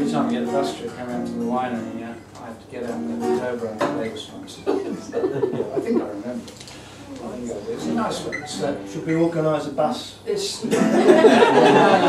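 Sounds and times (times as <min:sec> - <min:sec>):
acoustic guitars strummed: 0:00.0 - 0:06.0, 0:07.8 - 0:10.0, 0:10.6 - 0:12.0
people talking: 0:00.0 - 0:06.5, 0:07.1 - 0:12.0.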